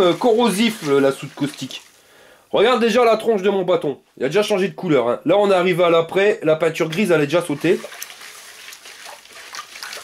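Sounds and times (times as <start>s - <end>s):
stick stirring liquid in bucket: 0.0s - 2.0s, 6.9s - 10.0s.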